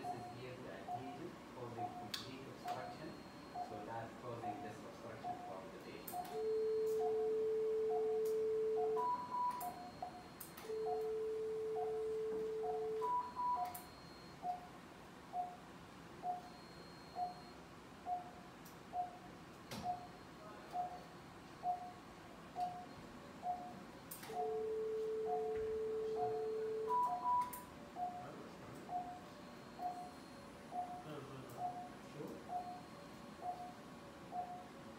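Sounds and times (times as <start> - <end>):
pulse oximeter beeps: 0.0 - 14.7, 16.2 - 34.7
long steady generator tone: 0.0 - 34.9.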